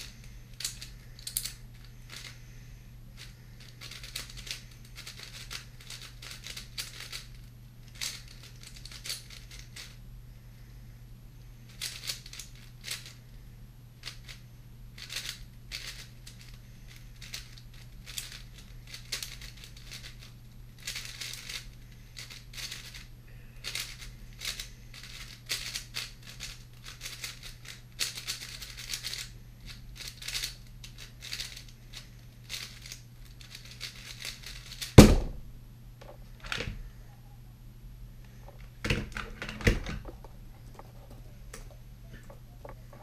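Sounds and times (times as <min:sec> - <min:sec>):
plastic puzzle cube clicking: 0:00.6 - 0:02.3.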